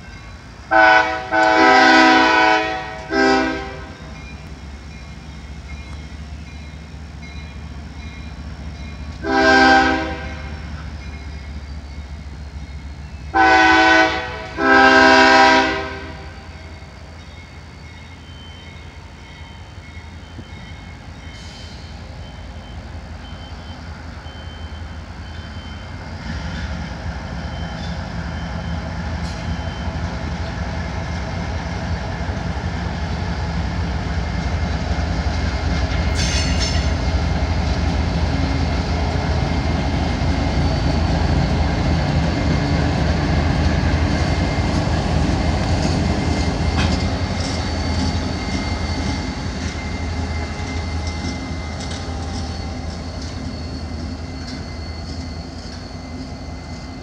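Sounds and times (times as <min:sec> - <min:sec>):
diesel locomotives rolling past: 0:00.0 - 0:57.0.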